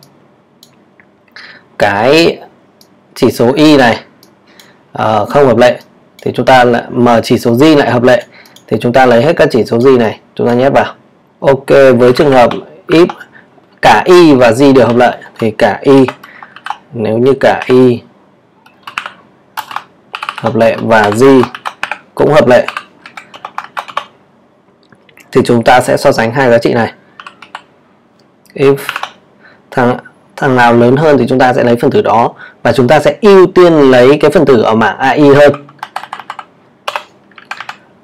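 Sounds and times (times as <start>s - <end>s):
computer keyboard keystrokes: 16.0s - 16.8s, 18.6s - 22.0s, 22.6s - 24.1s, 27.2s - 27.7s, 28.8s - 29.2s, 35.4s - 37.8s.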